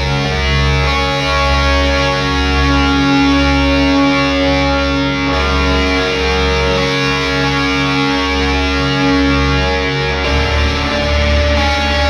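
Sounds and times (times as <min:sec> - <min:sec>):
distorted electric guitars: 0:00.0 - 0:12.0.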